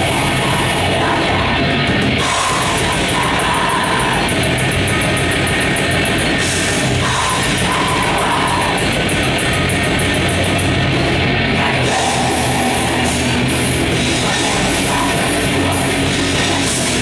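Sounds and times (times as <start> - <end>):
distorted electric guitars: 0.0 - 17.0.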